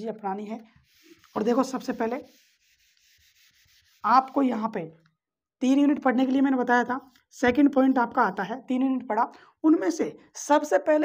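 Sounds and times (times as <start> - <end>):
eraser rubbing on whiteboard: 0.7 - 4.7.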